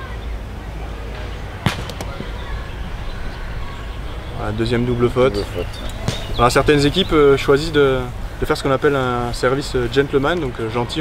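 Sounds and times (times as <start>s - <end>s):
low outdoor rumble: 0.0s - 11.0s
ball struck sharp smack: 1.6s - 2.5s, 6.0s - 6.4s.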